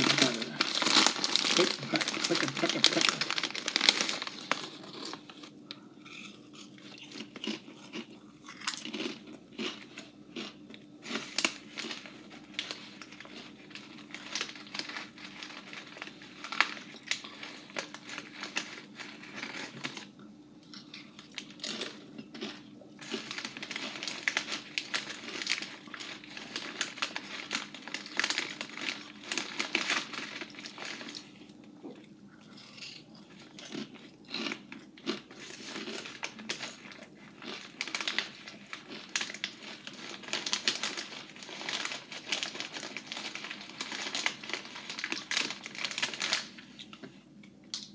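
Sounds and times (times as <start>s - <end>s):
plastic chip bag crinkling: 0.0s - 20.1s, 20.7s - 31.6s, 32.5s - 47.1s
chips being crunched and chewed: 0.0s - 31.6s, 32.4s - 47.0s.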